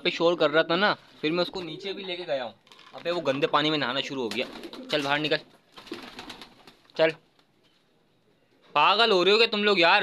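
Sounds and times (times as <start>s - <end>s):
person speaking: 0.0s - 5.5s.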